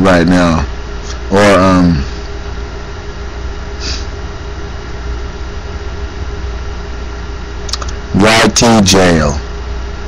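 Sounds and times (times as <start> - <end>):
low mechanical hum: 0.0 - 10.0.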